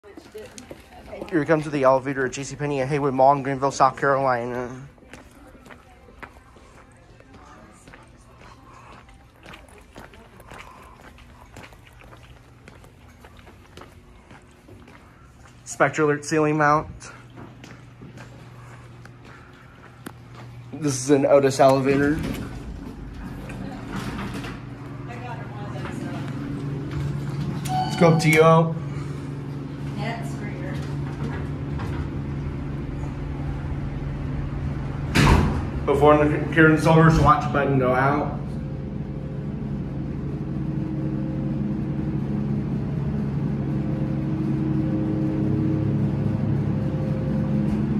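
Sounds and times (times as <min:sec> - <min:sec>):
voices: 0:00.0 - 0:11.9, 0:18.2 - 0:35.0
low store hum: 0:00.0 - 0:47.9
sneaker footsteps on tiled floor: 0:04.9 - 0:15.8, 0:17.0 - 0:21.0
elevator doors sliding shut: 0:21.5 - 0:28.6, 0:30.7 - 0:36.0
loud door bump: 0:35.0 - 0:35.8.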